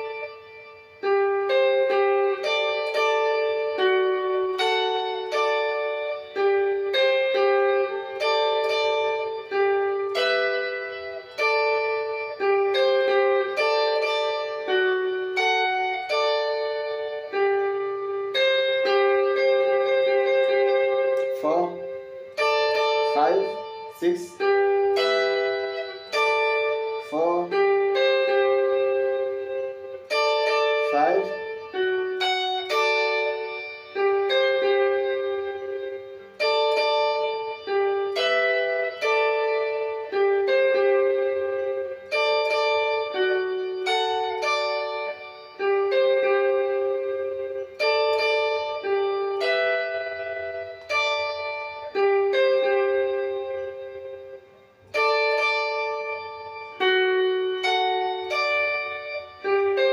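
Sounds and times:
electric guitar lead melody: 0.0 - 59.9.

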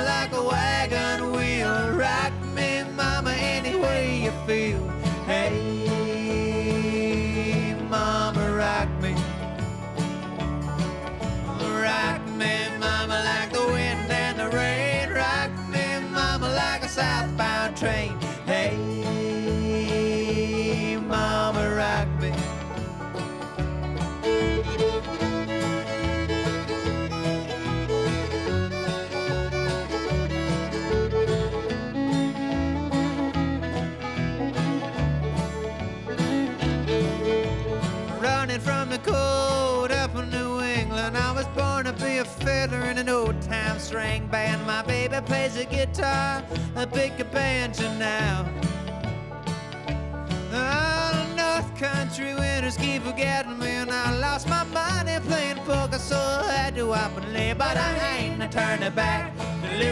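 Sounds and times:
banjo: 0.0 - 59.9
fiddle: 0.0 - 59.9
guitar: 0.0 - 59.9
upright bass: 0.0 - 59.9.

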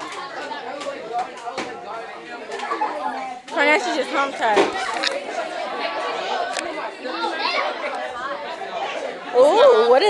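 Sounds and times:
girls chattering: 0.0 - 10.0.

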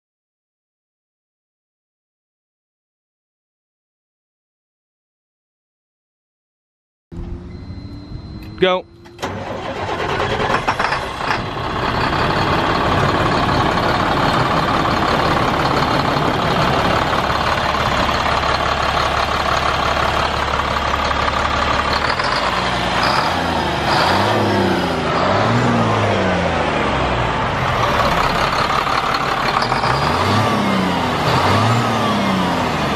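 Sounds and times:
diesel engine revving: 7.1 - 32.9
diesel truck engine idling: 7.2 - 32.9.

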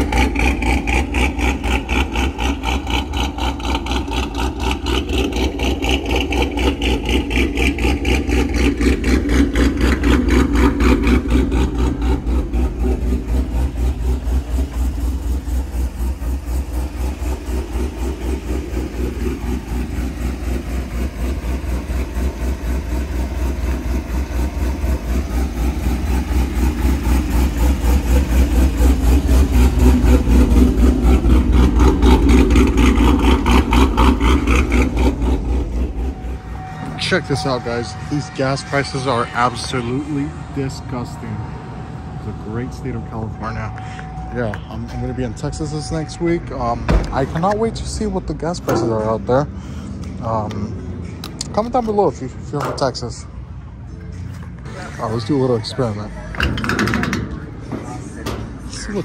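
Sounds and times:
pickup truck engine idling: 0.0 - 59.0.

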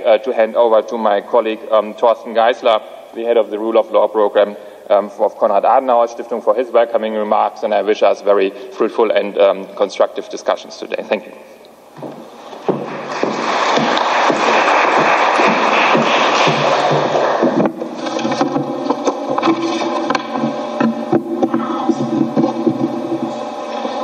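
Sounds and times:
steady multi-pitch drone: 9.8 - 24.0
audience applauding: 12.6 - 18.6.

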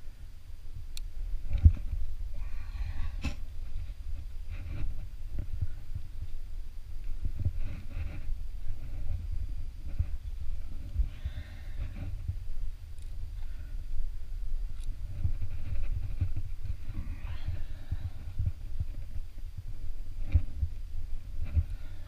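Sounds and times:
low thumps and rumble: 0.8 - 22.0.

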